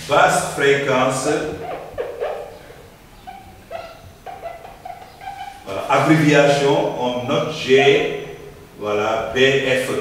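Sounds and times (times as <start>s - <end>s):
marker squeaking on whiteboard: 1.1s - 6.7s.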